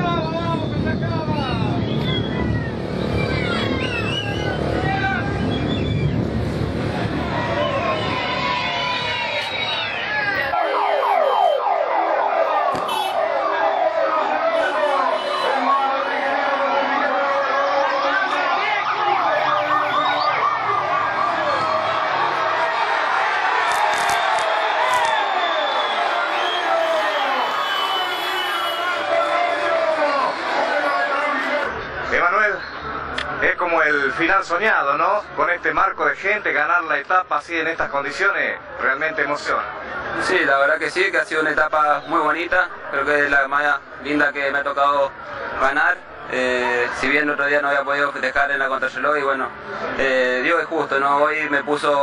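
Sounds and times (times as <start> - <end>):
motorcycle sirens wailing: 0.0 - 31.4
crowd voices: 0.0 - 52.0.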